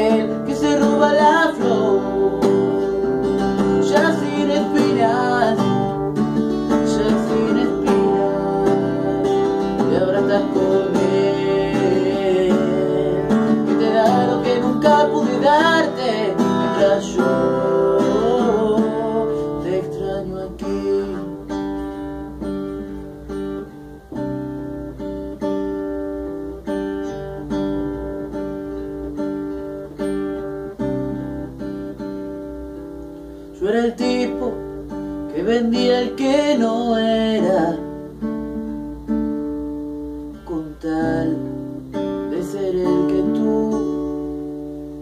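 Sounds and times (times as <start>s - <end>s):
man singing: 0.0s - 22.2s, 33.5s - 38.3s, 40.4s - 44.5s
acoustic guitar strumming: 0.0s - 45.0s.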